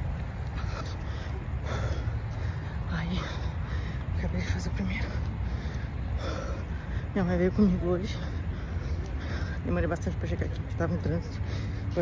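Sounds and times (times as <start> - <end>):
woman breathing heavily: 0.0 - 10.0, 10.6 - 12.0
steady low rumble: 0.0 - 12.0.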